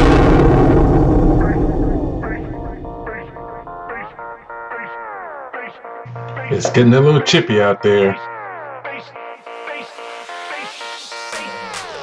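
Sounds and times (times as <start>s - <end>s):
explosion-like crash: 0.0s - 4.0s.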